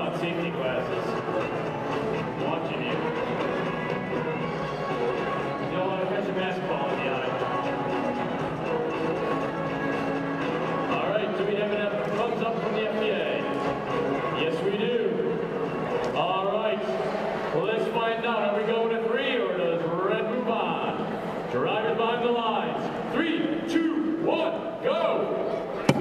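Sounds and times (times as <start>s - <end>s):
man talking: 0.0s - 1.2s, 2.4s - 3.1s, 5.7s - 7.5s, 10.9s - 13.5s, 14.4s - 15.4s, 16.1s - 25.4s
crowd noise in a hall: 0.0s - 26.0s
music: 0.0s - 26.0s.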